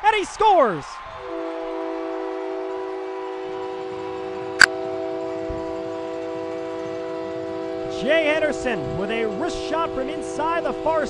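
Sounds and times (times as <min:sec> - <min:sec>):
arena goal horn: 0:01.2 - 0:11.0.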